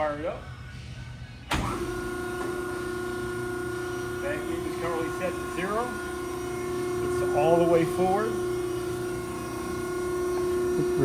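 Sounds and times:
hydraulic pump motor humming: 0:01.5 - 0:11.0.

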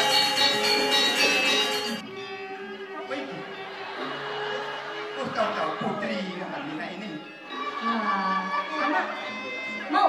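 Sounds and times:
gamelan ensemble playing: 0:00.0 - 0:02.4.

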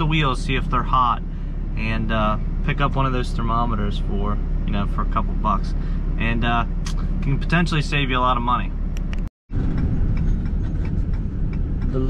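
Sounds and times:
truck engine and road rumble: 0:00.0 - 0:12.0.

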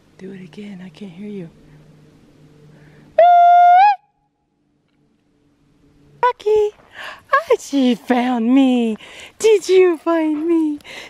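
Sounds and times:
woman's loud hooting call: 0:03.2 - 0:04.2.

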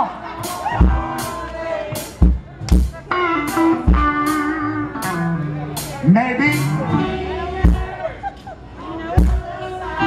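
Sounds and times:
electric blues band playing: 0:00.0 - 0:08.4
drum kit hits: 0:00.4 - 0:06.9
electric bass: 0:02.3 - 0:08.2
electric guitar line: 0:02.9 - 0:08.1.

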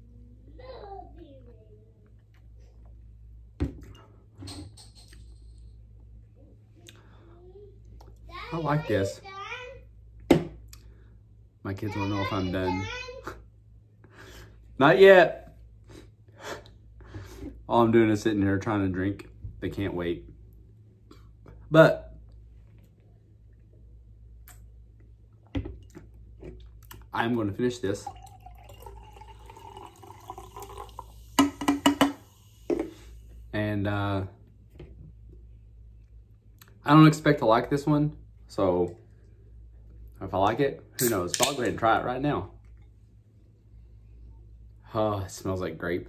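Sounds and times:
man gulping a drink: 0:28.1 - 0:31.8.

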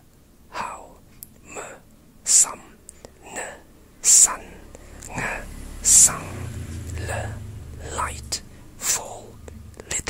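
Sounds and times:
person whispering: 0:00.5 - 0:10.0.

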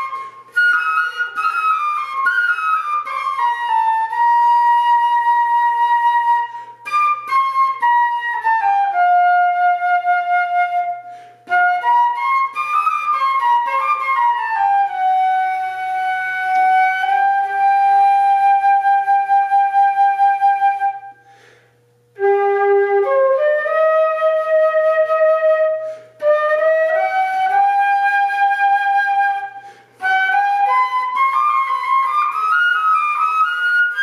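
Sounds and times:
flute playing slow melody: 0:00.0 - 0:21.3, 0:22.1 - 0:34.0
short breaths: 0:11.0 - 0:11.4, 0:21.2 - 0:21.9, 0:25.8 - 0:26.2, 0:29.6 - 0:30.0.

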